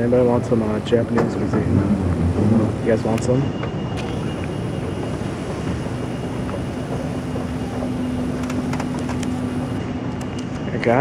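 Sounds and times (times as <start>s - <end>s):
airport terminal hall rumble: 0.0s - 11.0s
constant low hum: 0.0s - 11.0s.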